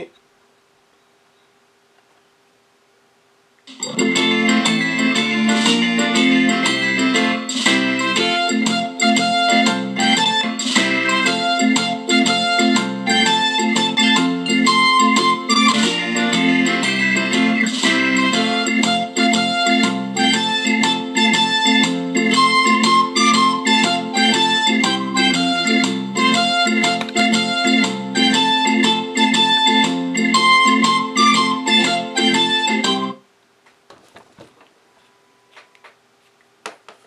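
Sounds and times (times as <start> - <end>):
guitar and keyboard music from small speaker: 3.6 - 33.2.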